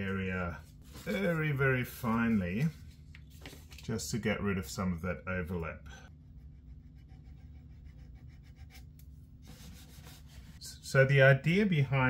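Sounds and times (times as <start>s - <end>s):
fine sandpaper rubbing varnish: 6.9s - 10.6s.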